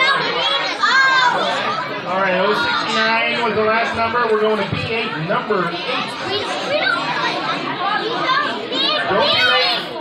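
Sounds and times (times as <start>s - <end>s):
high child's voice: 0.0s - 1.9s, 6.1s - 10.0s
children chattering and calling out: 0.0s - 10.0s.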